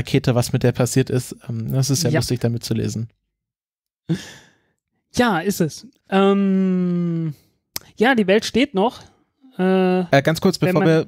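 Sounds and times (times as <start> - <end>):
person sighing: 4.1 - 4.6, 6.2 - 7.4.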